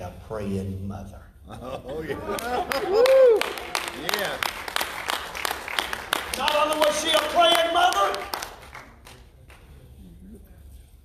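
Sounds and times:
scattered hand claps: 2.3 - 9.7.

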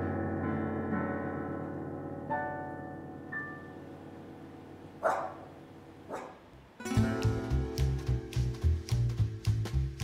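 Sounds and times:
background piano music: 0.0 - 10.0
small dog barking: 5.0 - 6.5
rhythmic guitar music: 6.8 - 10.0.

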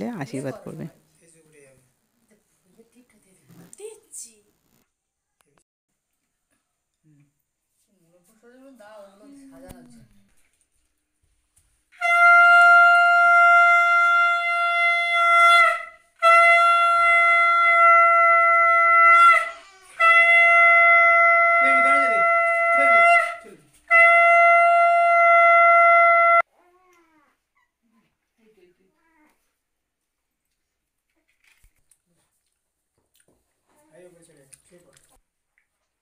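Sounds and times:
conch shell blast: 11.9 - 26.4.

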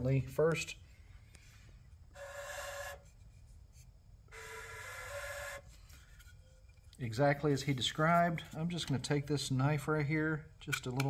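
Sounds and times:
breathy wooden flute notes: 2.1 - 3.2, 4.3 - 6.7.

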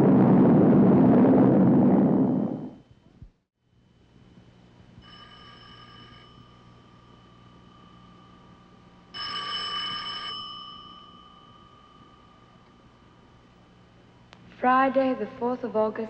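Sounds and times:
telephone bell ringing: 5.0 - 13.4.

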